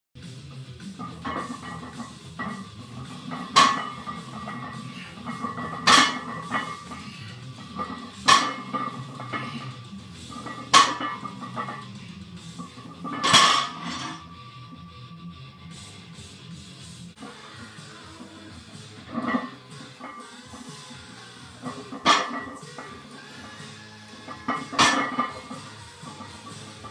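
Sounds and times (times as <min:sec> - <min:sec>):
barbell plates clanking on floor: 0:03.2 - 0:07.2, 0:07.8 - 0:09.7, 0:10.4 - 0:11.9, 0:24.3 - 0:25.6.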